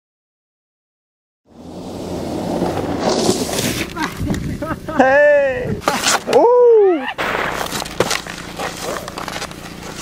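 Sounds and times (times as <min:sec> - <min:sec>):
snowboard scraping snow: 0:01.6 - 0:04.8, 0:07.1 - 0:10.0.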